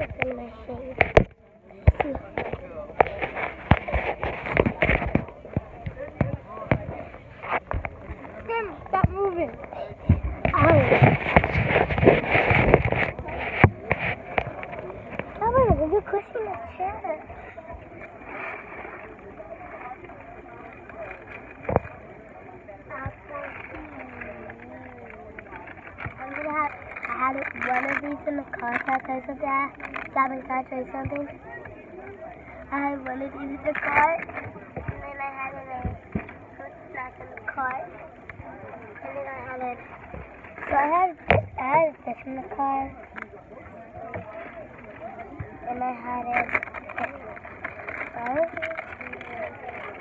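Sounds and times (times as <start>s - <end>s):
children talking: 0.0s - 50.0s.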